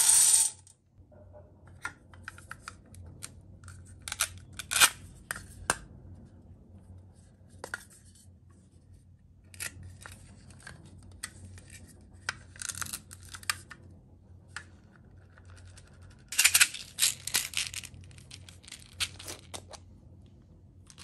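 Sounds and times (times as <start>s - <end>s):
plastic pieces rattling: 15.6s - 19.8s.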